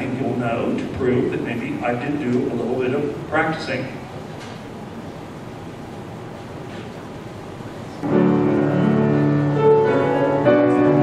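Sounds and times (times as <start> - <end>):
piano chords and melody: 8.0 - 11.0.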